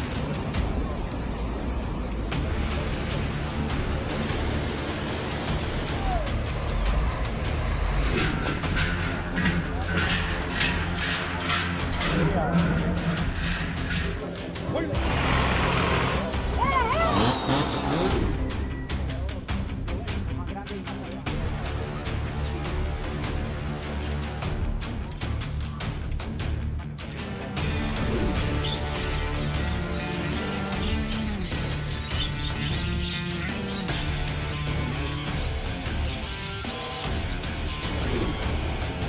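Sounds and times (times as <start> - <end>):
tractor engine running: 0.0 - 19.2
background music: 0.0 - 39.0
budgerigars chirping: 28.3 - 34.2.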